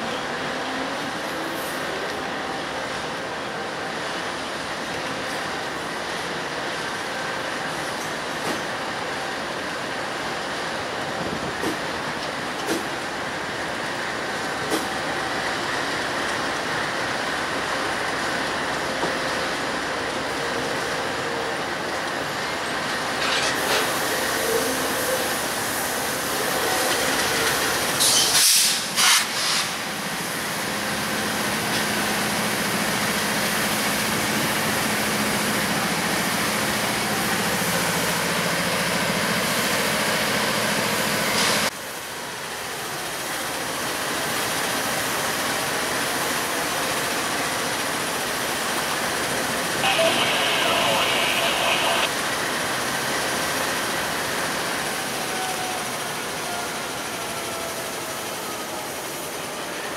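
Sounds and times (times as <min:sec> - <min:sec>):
diesel locomotives idling: 0:00.1 - 0:59.9
brief hissing bursts: 0:28.0 - 0:29.8.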